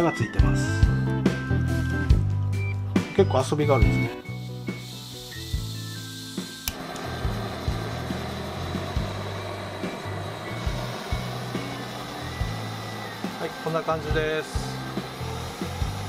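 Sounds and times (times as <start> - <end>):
background music: 0.0 - 16.0
gas burner hissing: 3.4 - 16.0
stove igniter click: 6.4 - 16.0.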